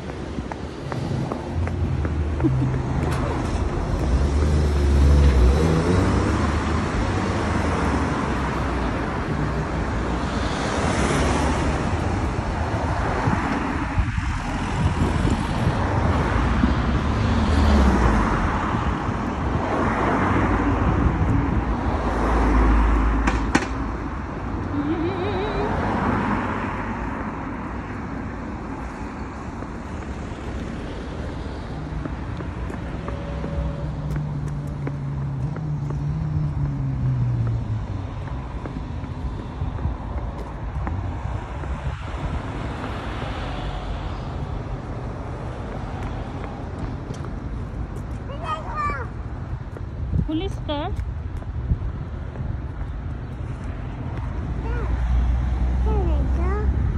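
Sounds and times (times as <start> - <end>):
road traffic going past: 0.0 - 56.9
vehicle engine and tyre rumble: 0.0 - 56.9.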